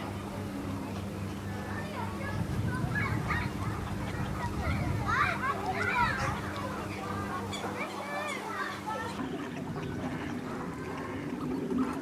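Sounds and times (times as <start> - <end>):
distant voices of people and children: 0.0 - 12.0
waterfowl calling: 3.4 - 12.0
geese honking: 6.0 - 12.0.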